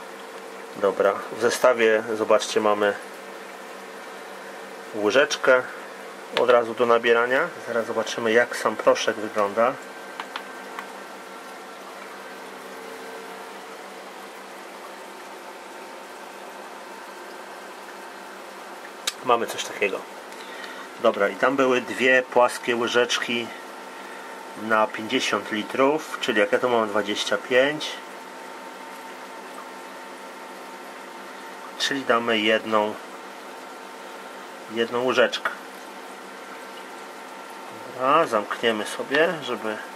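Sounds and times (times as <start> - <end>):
aquarium water bubbling: 0.0 - 39.9
faint constant tones: 0.0 - 39.9
faint equipment hum: 0.0 - 39.9.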